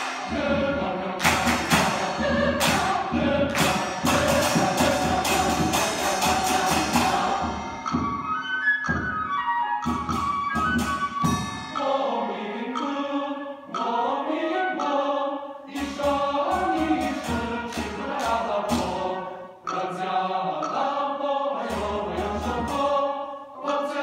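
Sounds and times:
mixed choir singing: 0.0 - 8.6, 11.2 - 24.0
hand drums beating: 0.0 - 9.2, 9.8 - 12.2, 15.7 - 19.1.

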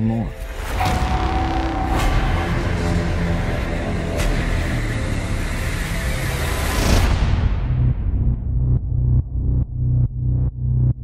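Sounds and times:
deep spaceship rumble: 0.8 - 11.0.

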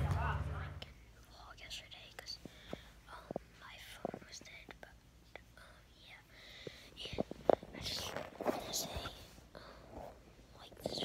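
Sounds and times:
boy whispering: 0.2 - 11.0.

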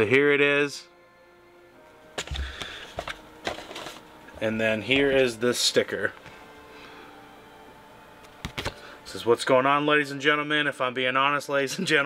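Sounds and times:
box contents clicking and knocking: 2.2 - 4.0.

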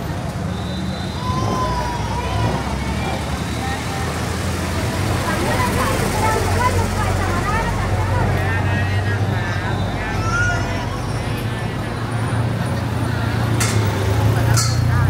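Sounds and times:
garbage truck diesel engine: 0.0 - 15.0
people chattering: 0.0 - 15.0.

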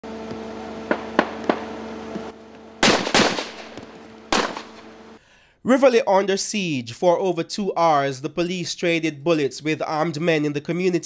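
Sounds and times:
loud gunshots with echo: 0.8 - 1.8, 2.8 - 4.9
distant gunshots: 0.8 - 1.9, 2.8 - 4.9.

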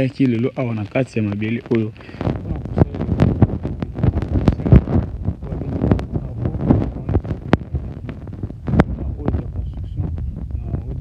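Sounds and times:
crackling knocks and clicks: 0.0 - 11.0
wind buffeting microphone: 0.0 - 11.0.

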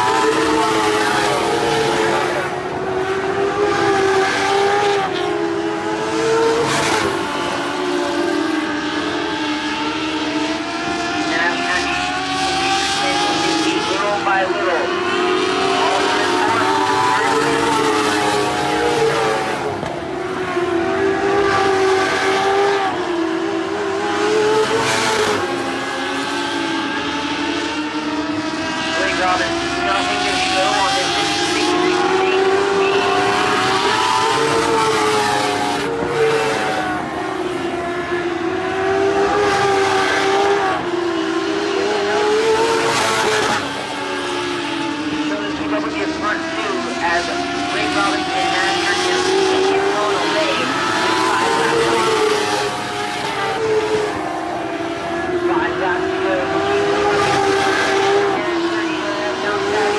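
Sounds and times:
race car engines running hard: 0.0 - 59.9.

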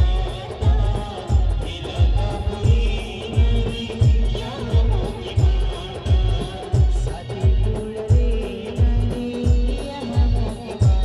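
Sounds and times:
heavy bass drum beats: 0.0 - 11.0.

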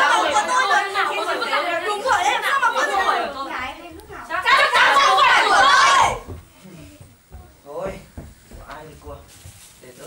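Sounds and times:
young voices chattering: 0.0 - 7.8.

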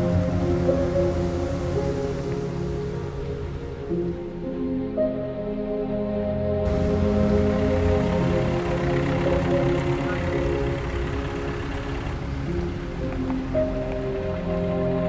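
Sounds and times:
rain hiss: 0.0 - 4.2, 6.7 - 15.0
slow background music: 0.0 - 15.0.

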